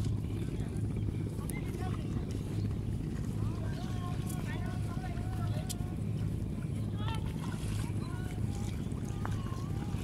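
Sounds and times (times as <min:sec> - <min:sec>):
low rumble on microphone: 0:00.0 - 0:10.0.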